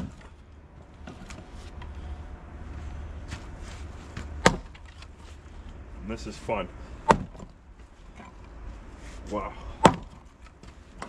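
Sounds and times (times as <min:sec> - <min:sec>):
maul splitting firewood crack: 0:00.0 - 0:02.0, 0:04.1 - 0:05.4, 0:07.0 - 0:08.4, 0:09.6 - 0:11.0.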